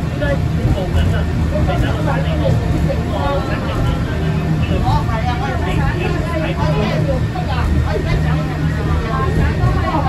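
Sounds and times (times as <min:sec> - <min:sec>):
tram car running rumble: 0:00.0 - 0:10.0
voices talking: 0:00.1 - 0:10.0.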